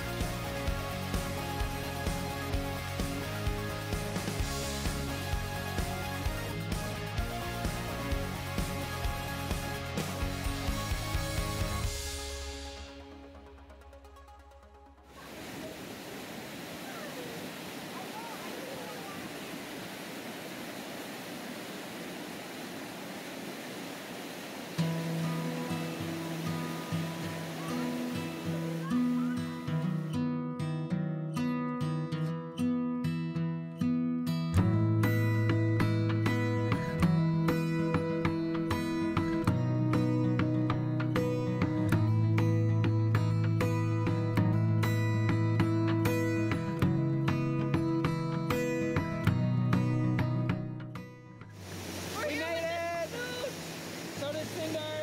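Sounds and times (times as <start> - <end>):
waterfall rushing: 15.1 - 30.1, 51.5 - 55.0.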